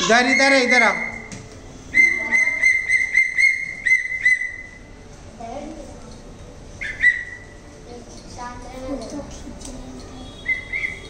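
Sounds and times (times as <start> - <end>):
high whistle pulses: 0.0 - 1.3.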